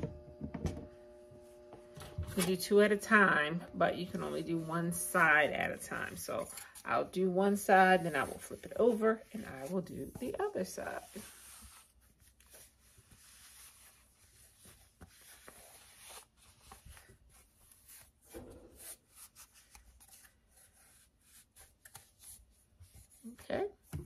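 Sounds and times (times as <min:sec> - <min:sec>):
lint roller rubbing on fabric: 0:02.4 - 0:21.6.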